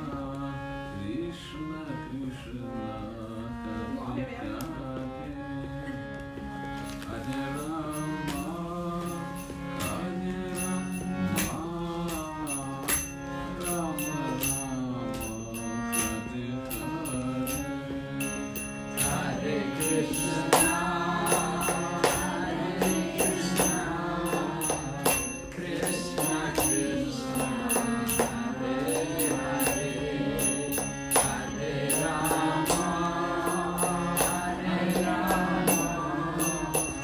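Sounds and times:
harmonium chords: 0:00.0 - 0:37.0
person singing a chant: 0:07.1 - 0:37.0
hand cymbals striking: 0:07.6 - 0:37.0.

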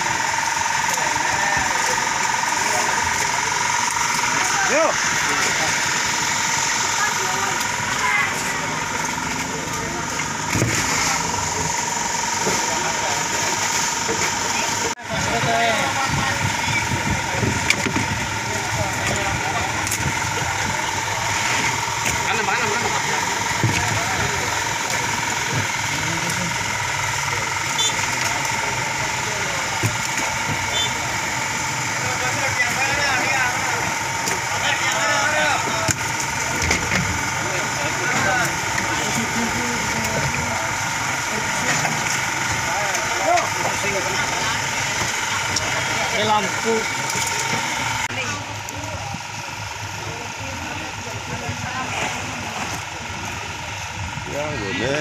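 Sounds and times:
engine idling: 0:00.0 - 0:55.0
indistinct voices talking: 0:00.0 - 0:55.0.

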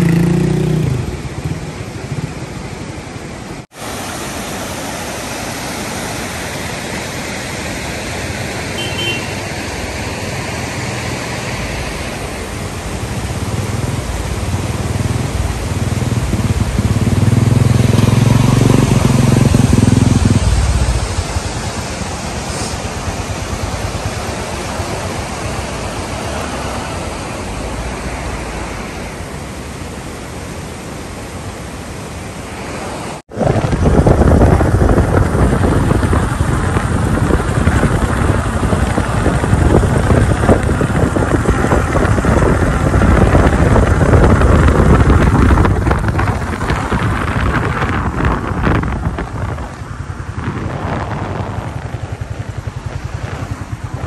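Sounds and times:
motorcycle passing close: 0:00.0 - 0:02.6, 0:10.5 - 0:29.2, 0:33.3 - 0:54.0
motorcycle engines: 0:00.0 - 0:03.7, 0:08.0 - 0:54.0
stream water rushing: 0:00.0 - 0:54.0
wind buffeting microphone: 0:09.6 - 0:29.3, 0:33.3 - 0:54.0.

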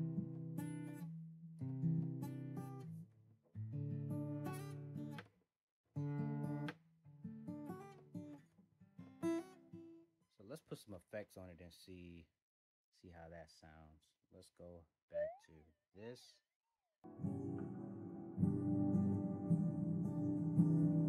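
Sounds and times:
acoustic guitar strummed chords: 0:17.1 - 0:21.0.

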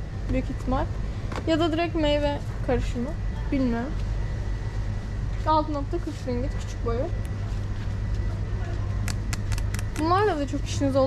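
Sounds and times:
sharp ticks: 0:09.1 - 0:10.2.

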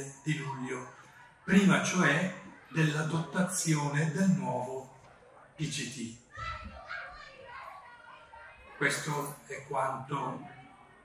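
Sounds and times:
faint children's voices: 0:00.0 - 0:11.0.

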